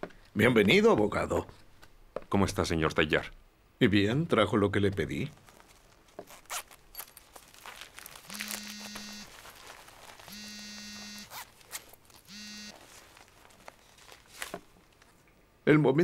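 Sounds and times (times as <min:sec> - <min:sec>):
bag handling clicks and rustles: 0:05.3 - 0:15.2
zipper being pulled open: 0:06.2 - 0:07.4, 0:10.1 - 0:13.0.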